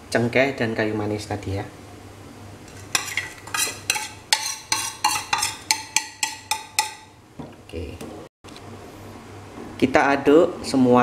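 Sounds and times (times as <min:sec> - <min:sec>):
ceramic plate clinking on metal pot: 0:03.0 - 0:07.1.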